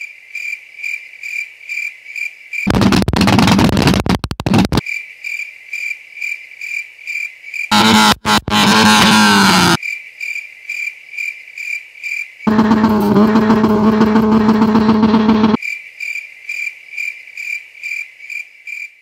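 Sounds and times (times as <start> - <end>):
car engine revving: 2.7 - 4.8, 7.7 - 9.8, 12.5 - 15.6.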